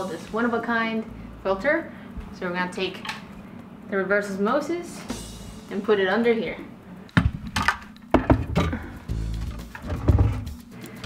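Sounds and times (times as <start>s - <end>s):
background music: 0.0s - 11.0s
plastic unit knocking and thudding: 8.2s - 8.8s.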